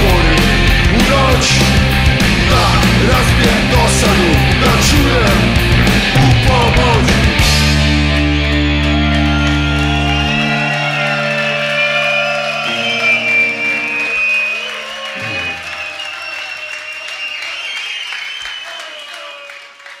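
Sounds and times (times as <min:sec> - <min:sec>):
electric guitars and bass chord: 0:00.0 - 0:14.0
crowd cheering and shouting: 0:00.0 - 0:20.0.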